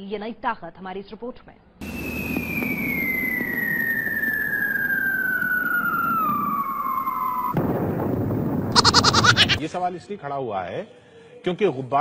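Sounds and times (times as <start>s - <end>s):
whistle falling in pitch: 1.8s - 7.6s
rocket crash explosion rumble: 1.8s - 9.6s
rocket engine roar: 1.8s - 9.6s.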